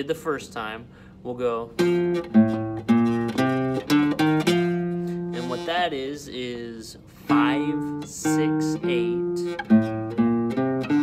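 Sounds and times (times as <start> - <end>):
classical guitar plucked notes: 1.8 - 5.9, 7.2 - 11.0.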